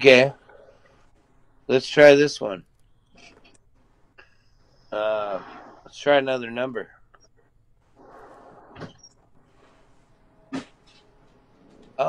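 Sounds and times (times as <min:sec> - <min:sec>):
soft rustle: 0:07.3 - 0:12.0.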